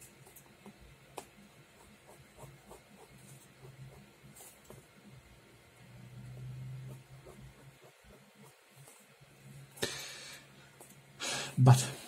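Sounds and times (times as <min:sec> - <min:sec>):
faint steady hum: 0:00.0 - 0:12.0
pen scratching across paper: 0:00.2 - 0:04.9, 0:06.3 - 0:09.1.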